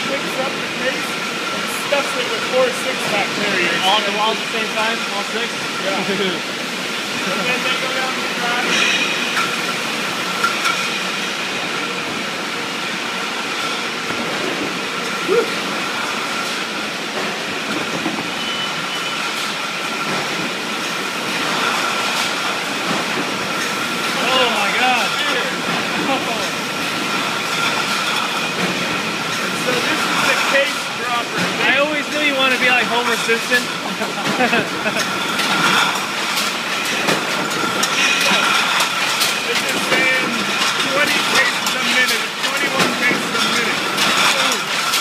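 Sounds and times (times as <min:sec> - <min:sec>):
bottling line machinery din: 0:00.0 - 0:45.0.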